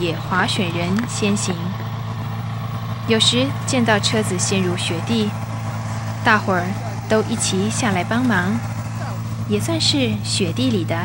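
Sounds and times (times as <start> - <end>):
people talking: 0.0 - 1.8, 3.1 - 5.4, 6.2 - 11.0
snowmobile engine idling: 0.0 - 11.0.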